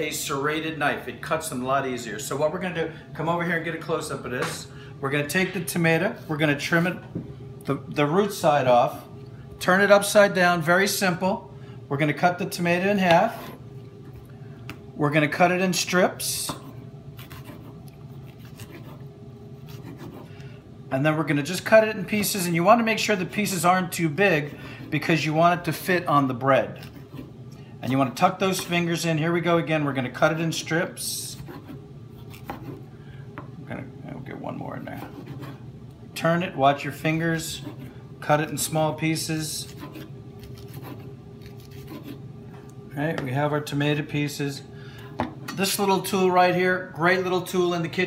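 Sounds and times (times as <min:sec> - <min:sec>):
knife sawing through tomato: 0:16.6 - 0:20.4, 0:26.6 - 0:27.4, 0:31.2 - 0:32.9, 0:34.8 - 0:35.6, 0:37.3 - 0:38.0, 0:39.4 - 0:42.2
knife slicing tomato on board: 0:31.4 - 0:32.8.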